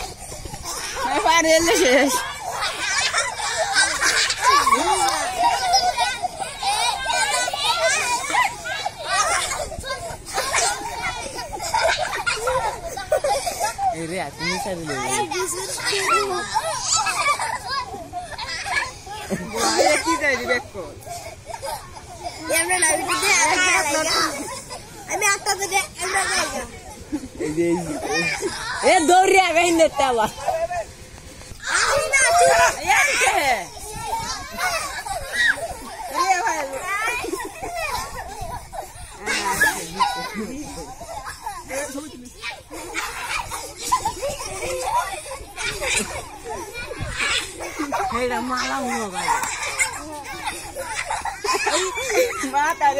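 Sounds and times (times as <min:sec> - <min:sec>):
children shouting and chattering: 0:00.0 - 0:52.9.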